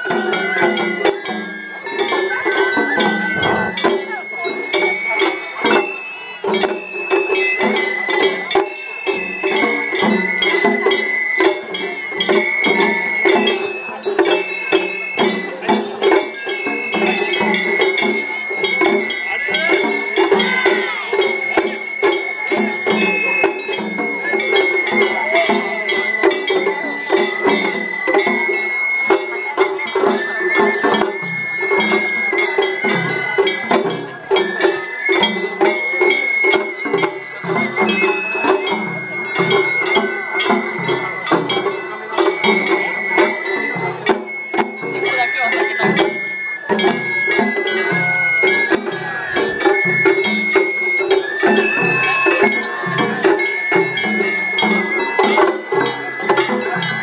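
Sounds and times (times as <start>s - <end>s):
bamboo flute melody: 0.0s - 57.0s
fast taiko drumming: 0.0s - 57.0s.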